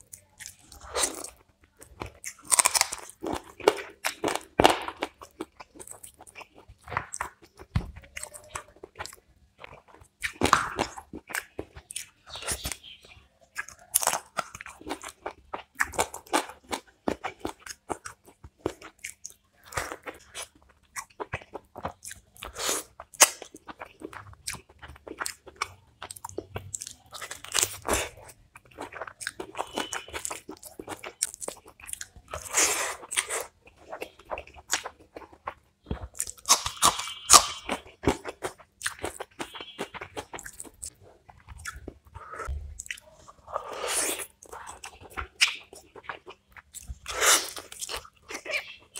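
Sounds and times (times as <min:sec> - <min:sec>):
wet chewing and crunching: 0:00.0 - 0:48.9.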